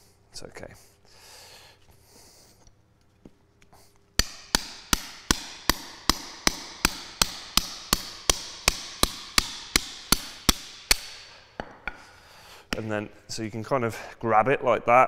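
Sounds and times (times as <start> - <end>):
hammer striking steel chisel: 4.2 - 13.2.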